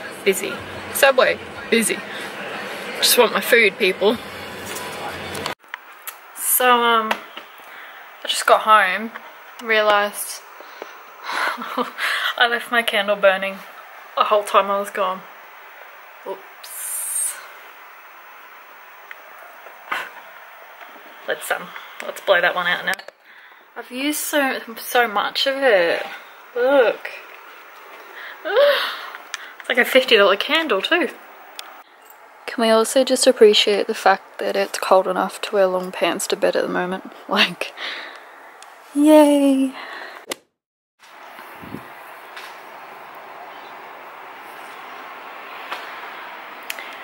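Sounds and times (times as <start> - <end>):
room noise hiss: 0.0 - 31.9.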